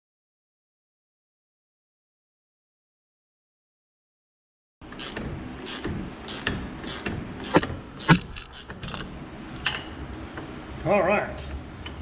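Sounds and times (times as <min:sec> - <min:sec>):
ratchet wrench clicking: 0:04.9 - 0:09.0.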